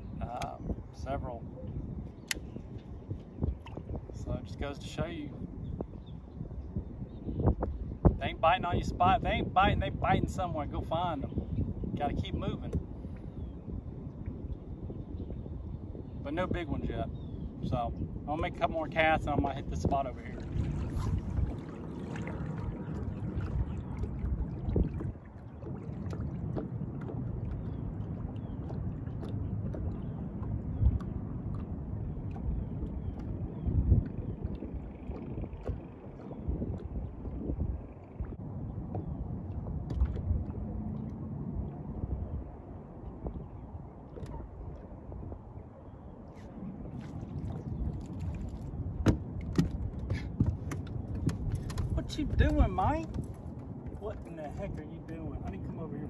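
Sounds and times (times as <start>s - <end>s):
water against boat hull: 0.0s - 4.4s, 5.3s - 56.0s
wind on microphone: 0.0s - 56.0s.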